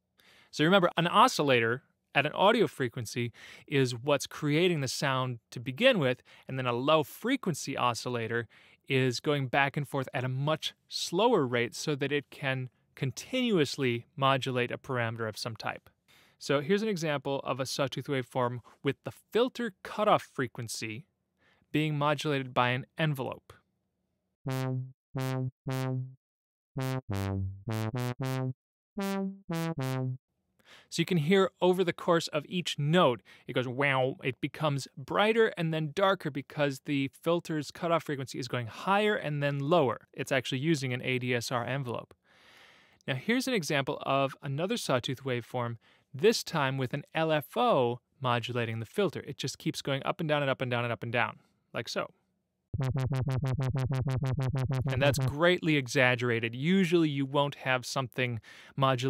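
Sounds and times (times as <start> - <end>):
filtered synthesizer notes: 24.5 - 26.1, 26.8 - 30.2, 52.8 - 55.4.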